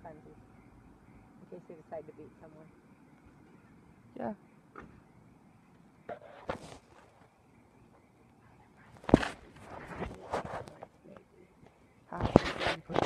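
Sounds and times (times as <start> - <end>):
small fireworks pops: 9.0 - 11.2.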